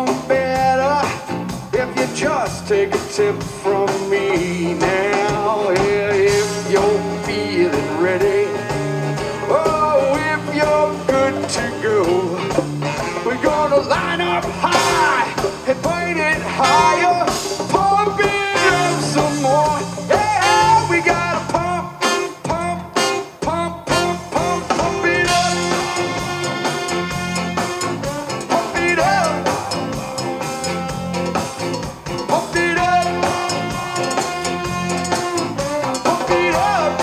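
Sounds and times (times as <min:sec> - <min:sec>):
live blues-rock band playing: 0:00.0 - 0:37.0.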